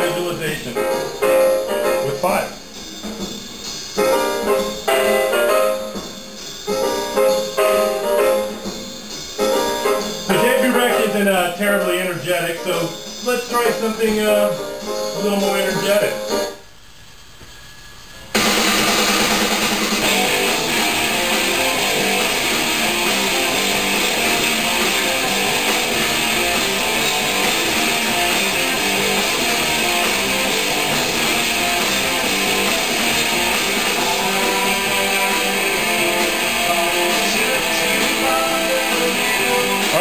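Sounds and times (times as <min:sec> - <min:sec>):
rock music with electric guitar: 0:00.0 - 0:16.6, 0:18.4 - 0:40.0.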